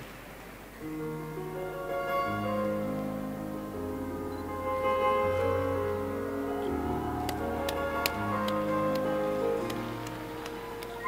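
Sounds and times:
piano playing slow chords: 0.6 - 11.0.

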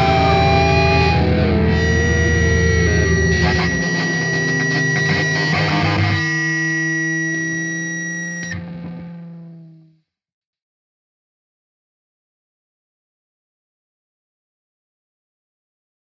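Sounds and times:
ringing guitar chord: 0.0 - 9.6
distorted electric guitar band music: 0.0 - 9.8.

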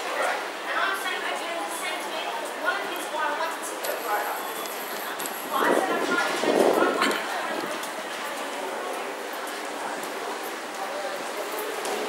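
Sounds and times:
voices of passersby: 0.0 - 12.0.

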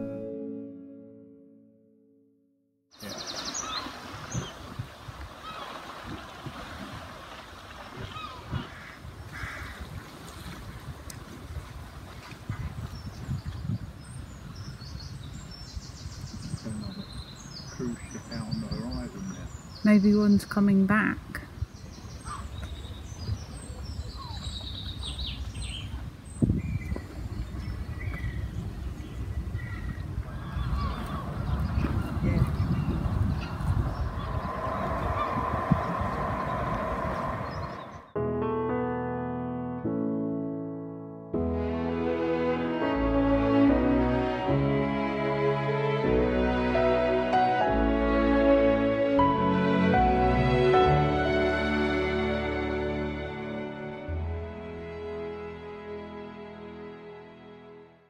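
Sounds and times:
piano and string chords: 0.0 - 2.6, 33.2 - 58.0
wind rumbling on microphone: 3.1 - 38.2
songbird singing high notes: 32.3 - 38.2
faint high calls: 33.4 - 38.1.

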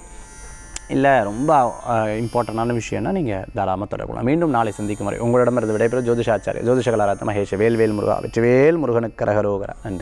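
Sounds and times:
faint electrical hum and buzz: 0.0 - 10.0
man speaking: 0.9 - 10.0.

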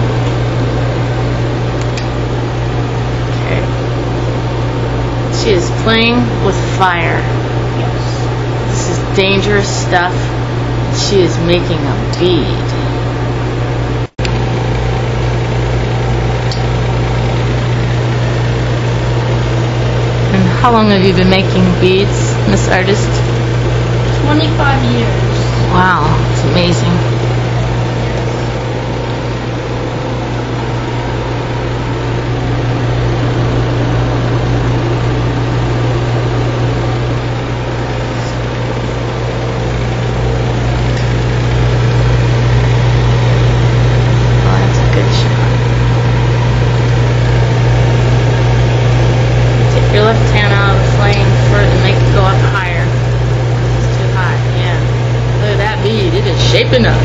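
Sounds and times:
torch burning hum and hiss: 37.3 - 57.0.

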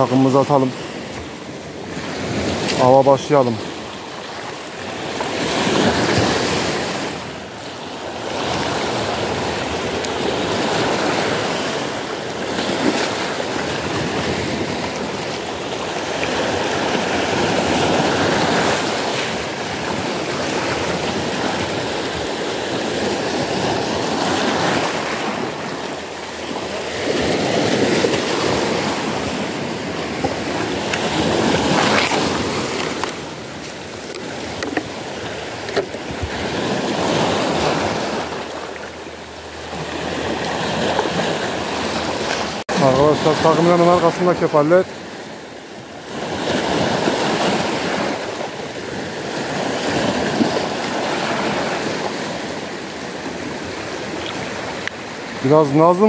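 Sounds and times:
waves washing over pebbles: 0.0 - 56.0.

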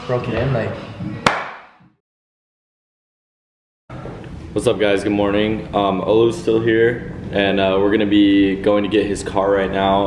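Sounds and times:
fist smacking leather glove: 1.3 - 1.7.

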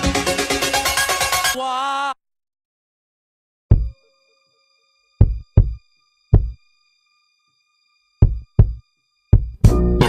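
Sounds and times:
deep low drum thump: 3.7 - 4.0, 5.2 - 5.8, 6.4 - 6.6, 8.2 - 8.8, 9.4 - 9.7.

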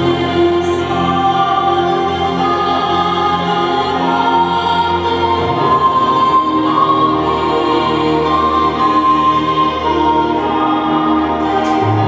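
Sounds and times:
choir holding long chords: 0.0 - 12.0.

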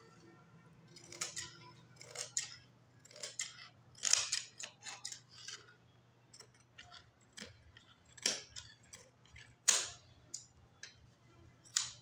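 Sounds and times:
scissors cutting fabric: 0.9 - 5.7.

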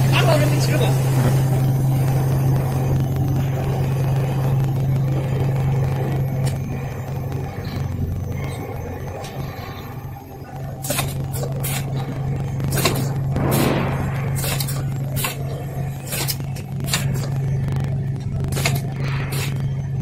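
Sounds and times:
machinery humming: 0.0 - 20.0.

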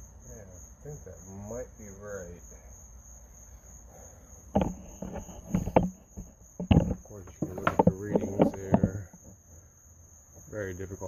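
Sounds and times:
crickets droning: 0.0 - 11.0
knocks and clatters on engine: 4.6 - 9.3.

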